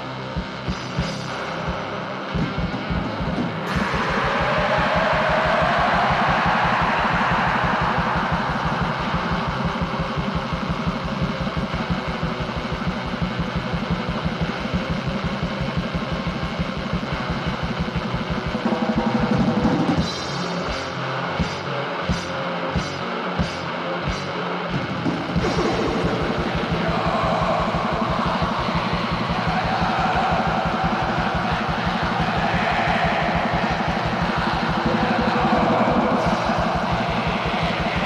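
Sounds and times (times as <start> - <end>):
distorted electric guitar: 0.0 - 38.0
rapid metal drum beats: 0.2 - 20.5, 25.0 - 38.0.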